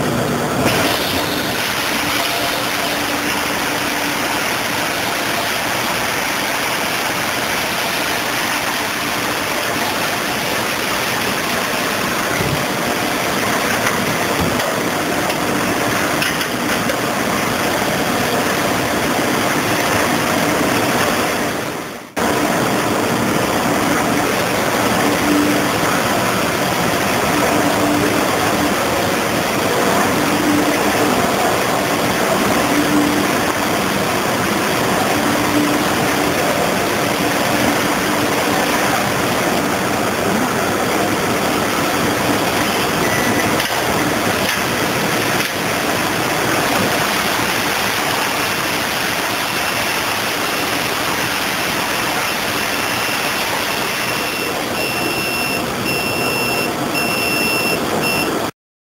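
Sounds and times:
grinding machine running: 0:00.0 - 0:57.1.

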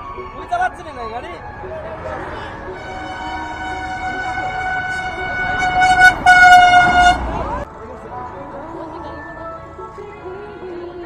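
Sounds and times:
vehicle horn blast: 0:02.8 - 0:07.6
vehicle horn honks: 0:02.8 - 0:07.6.

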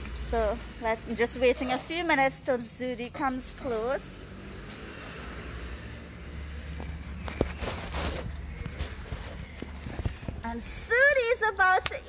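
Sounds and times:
rustling: 0:06.8 - 0:10.8.

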